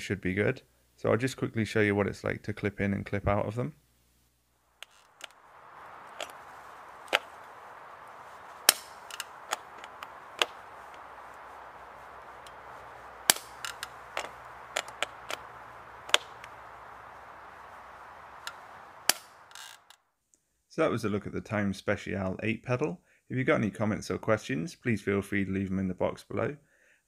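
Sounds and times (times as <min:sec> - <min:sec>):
steady hiss: 0:03.3 - 0:20.0
pedal mechanism clicking: 0:13.3 - 0:16.6.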